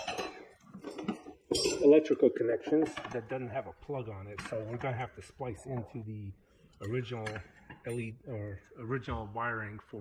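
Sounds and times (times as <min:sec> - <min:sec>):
man speaking: 0:01.8 - 0:10.0.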